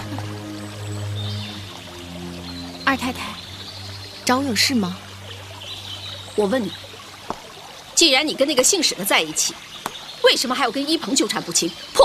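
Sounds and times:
sustained drama score: 0.0 - 7.2.

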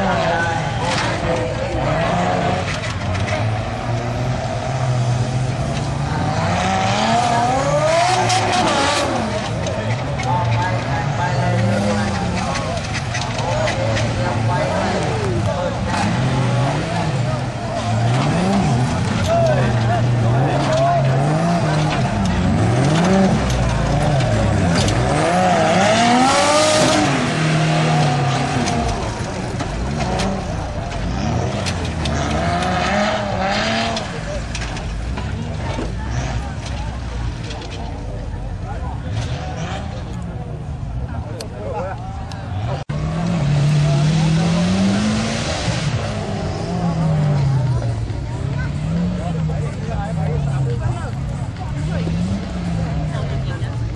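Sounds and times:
truck engines revving: 0.0 - 53.9.

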